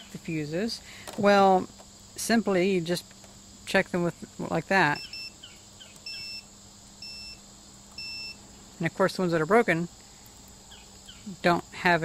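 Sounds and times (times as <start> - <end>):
multimeter continuity beeps: 4.9 - 5.4, 6.0 - 8.4.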